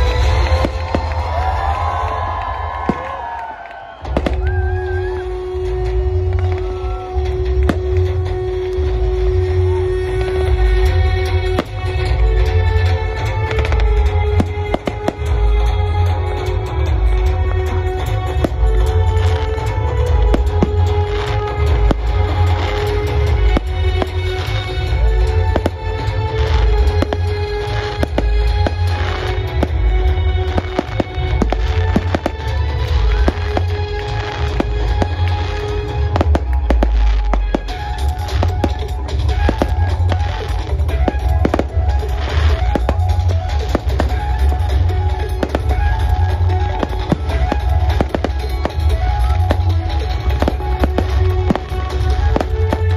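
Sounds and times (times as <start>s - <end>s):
loud music with heavy bass: 0.0s - 3.4s, 4.1s - 52.9s
fireworks popping and crackling: 0.0s - 52.9s.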